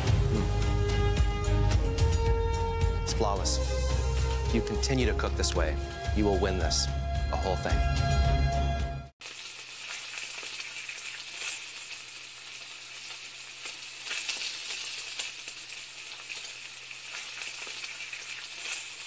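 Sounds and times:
crackling sizzle: 0:03.4 - 0:06.2, 0:09.2 - 0:19.0.

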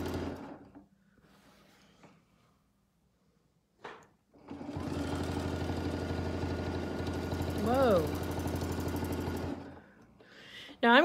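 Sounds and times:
sewing machine stitching: 0:00.0 - 0:00.8, 0:04.3 - 0:09.9.

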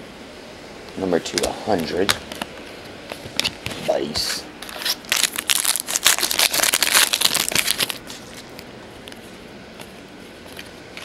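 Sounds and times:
foil wrapper crinkling: 0:04.6 - 0:09.2.

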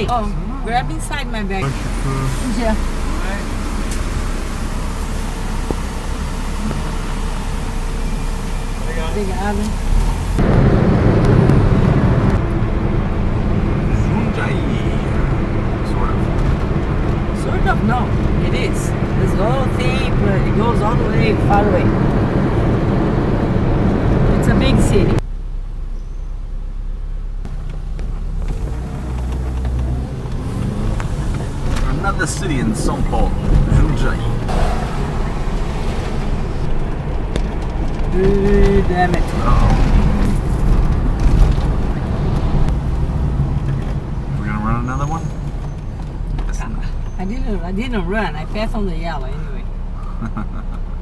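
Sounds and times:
car engine: 0:00.0 - 0:51.0
low road rumble: 0:00.0 - 0:51.0.

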